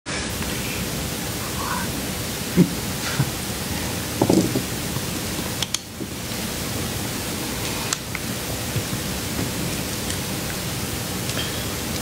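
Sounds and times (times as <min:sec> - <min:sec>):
steady background hiss: 0:00.1 - 0:12.0.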